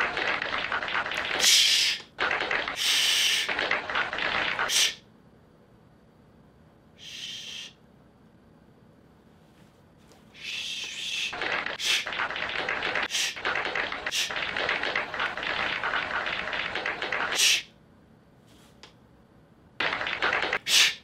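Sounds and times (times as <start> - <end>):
person shushing: 7.0 - 7.8
hissing crackling mouth noise: 19.8 - 21.0.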